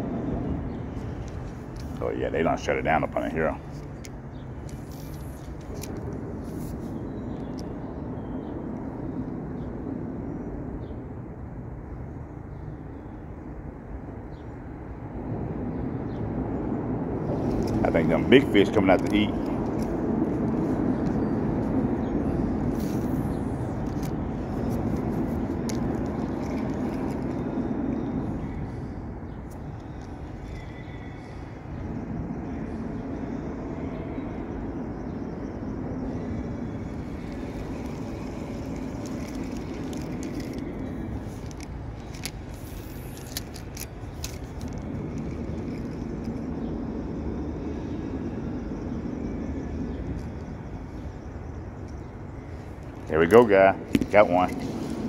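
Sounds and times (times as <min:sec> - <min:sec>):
traffic rumbling on bridge overhead: 0:00.0 - 0:55.0.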